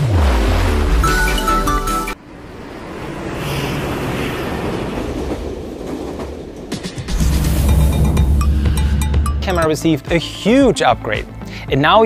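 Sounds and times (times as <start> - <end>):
deep bass music: 0.0 - 2.2, 7.1 - 11.9
steady rushing noise: 2.1 - 9.6.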